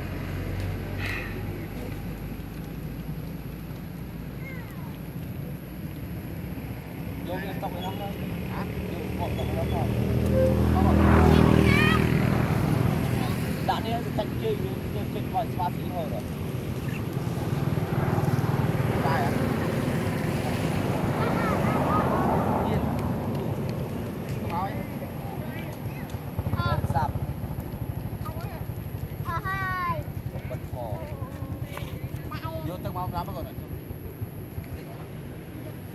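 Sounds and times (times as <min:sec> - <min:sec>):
motor vehicle engine passing: 0:06.7 - 0:25.5.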